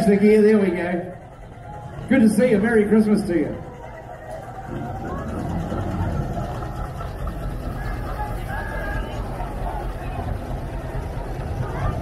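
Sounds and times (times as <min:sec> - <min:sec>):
steam traction engine rumbling: 0:00.0 - 0:12.0.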